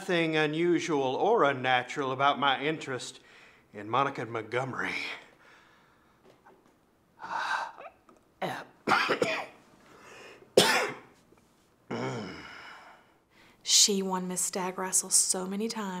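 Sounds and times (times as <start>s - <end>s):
man coughing: 8.9s - 9.6s, 10.6s - 11.1s.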